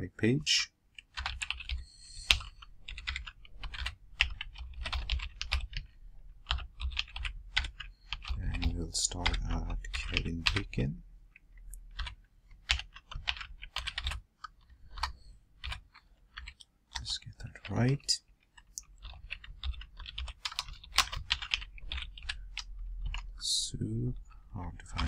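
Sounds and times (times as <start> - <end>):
typing on computer keyboard: 0.9 - 10.8, 11.4 - 23.5.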